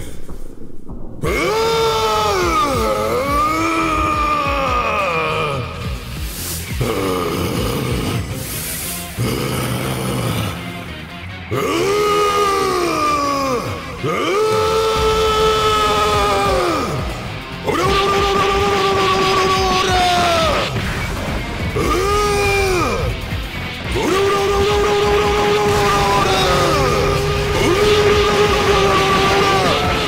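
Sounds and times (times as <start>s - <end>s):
music: 0.0s - 30.0s
man shouting battle cries: 1.2s - 5.8s, 11.6s - 20.8s, 21.8s - 23.2s, 23.9s - 30.0s.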